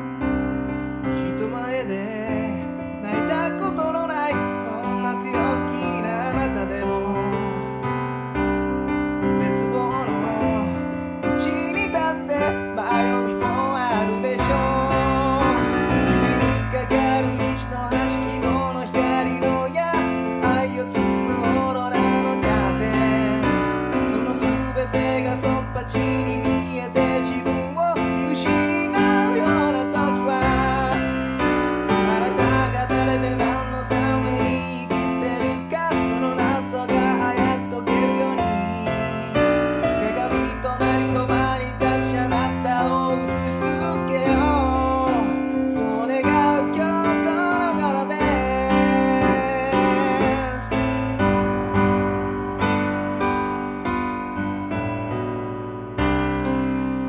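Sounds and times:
piano chords: 0:00.0 - 0:57.0
person singing: 0:00.8 - 0:08.0, 0:09.2 - 0:51.4.

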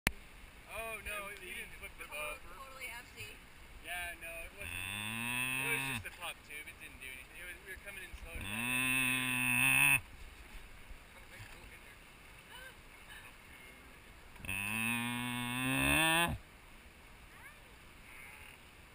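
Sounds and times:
cow mooing: 0:04.6 - 0:06.0, 0:08.4 - 0:10.0, 0:14.4 - 0:16.4.

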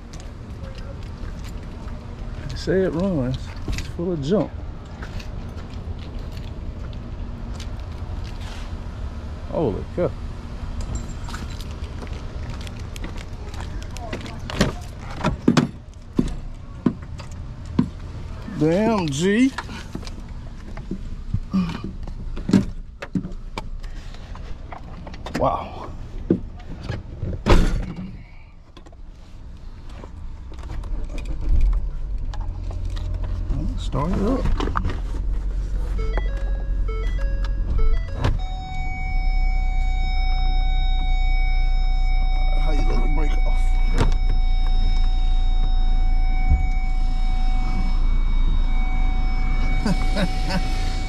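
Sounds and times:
car engine running: 0:31.9 - 0:51.0
dashboard chimes: 0:36.0 - 0:51.0
electronic warning tone: 0:36.0 - 0:51.0.

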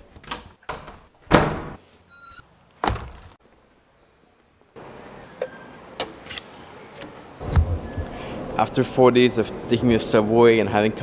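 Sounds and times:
door clunks and thuds: 0:00.7 - 0:01.8, 0:02.8 - 0:03.4.

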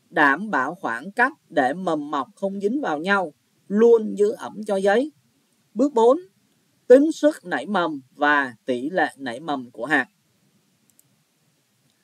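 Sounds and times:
computer mouse clicks: 0:10.9 - 0:11.2.

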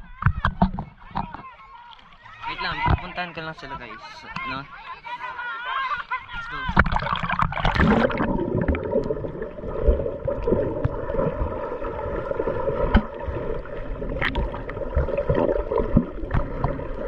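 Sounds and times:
underwater rumble and gurgling: 0:06.6 - 0:17.0.

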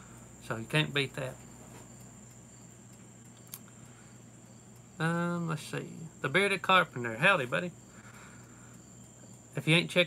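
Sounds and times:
crickets and night insects chirring: 0:00.0 - 0:10.0.

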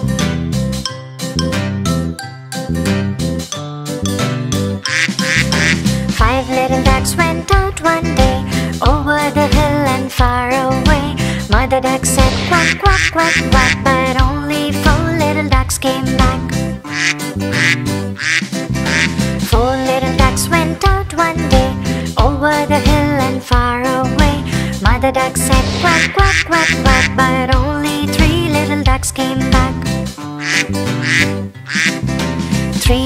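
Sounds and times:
bouncy children's song music: 0:00.0 - 0:33.0
duck quacks: 0:04.9 - 0:05.8, 0:12.6 - 0:13.8, 0:16.9 - 0:19.2, 0:25.9 - 0:27.2, 0:30.4 - 0:32.0.

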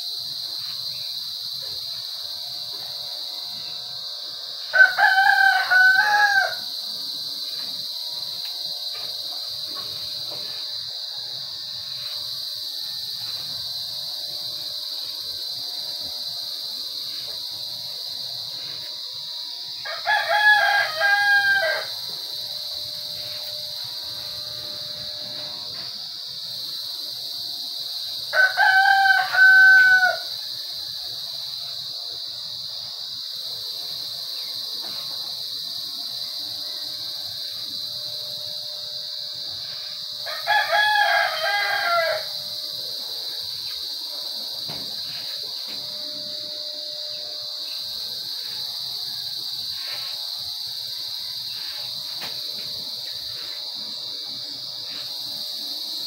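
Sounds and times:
rooster crowing: 0:04.6 - 0:07.0, 0:19.7 - 0:22.4, 0:28.2 - 0:31.2, 0:40.1 - 0:42.6.

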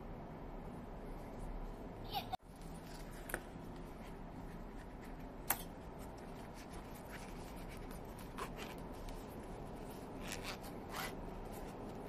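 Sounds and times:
zipper rasping: 0:10.0 - 0:11.8.

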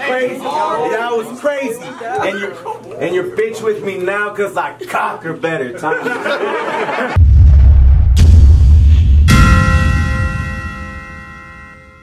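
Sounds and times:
deep bass boom: 0:07.2 - 0:11.1
metallic bell-like clang: 0:09.3 - 0:12.0.

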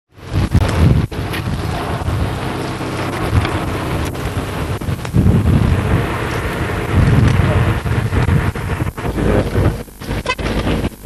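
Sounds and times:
wind buffeting microphone: 0:00.2 - 0:11.0.

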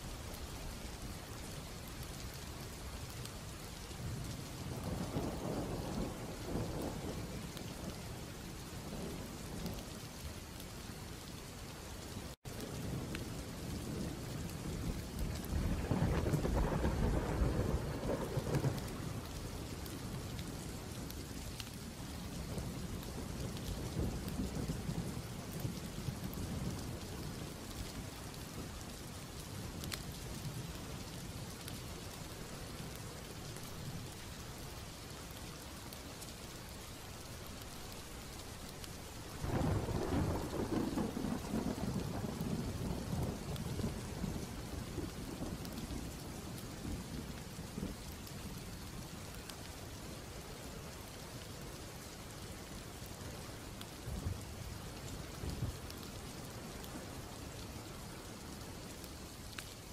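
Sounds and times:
steady rain: 0:00.0 - 0:59.9
rolling thunder: 0:12.7 - 0:19.4.

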